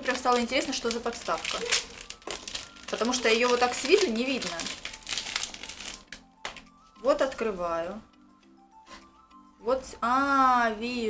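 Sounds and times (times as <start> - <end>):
plastic packaging crinkling: 0.0 - 6.8
faint background music: 0.0 - 11.0.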